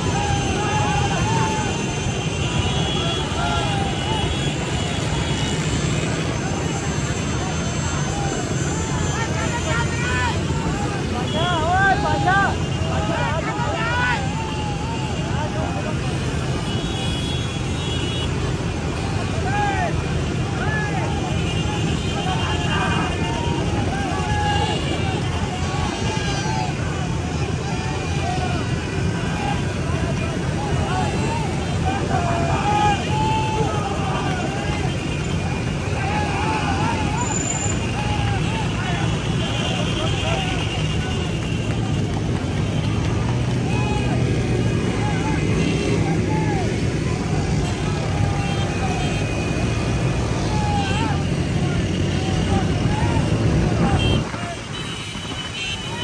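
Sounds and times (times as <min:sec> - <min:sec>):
motorcycle engines droning: 0:00.0 - 0:56.0
riders shouting and whooping: 0:00.0 - 0:56.0.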